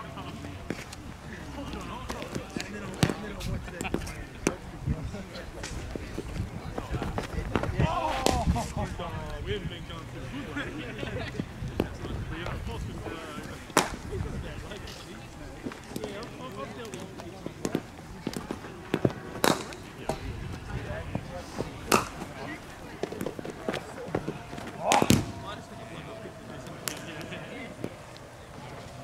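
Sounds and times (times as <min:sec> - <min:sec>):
faint voices: 0:00.0 - 0:29.0
cricket bat hitting ball: 0:13.8 - 0:14.1, 0:18.9 - 0:19.8, 0:21.8 - 0:22.3, 0:24.8 - 0:25.4.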